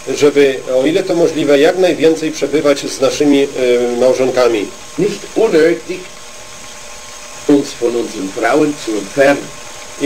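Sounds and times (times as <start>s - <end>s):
man speaking: 0.0s - 6.2s, 7.4s - 9.6s.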